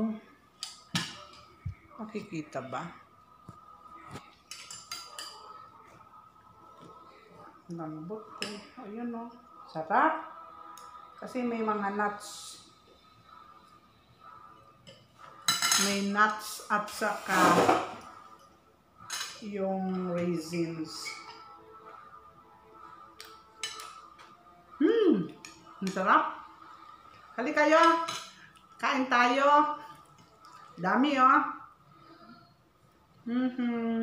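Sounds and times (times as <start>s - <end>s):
cutlery clinking on a plate: 4.2s - 5.6s, 14.8s - 16.0s, 19.0s - 19.4s, 23.2s - 24.4s.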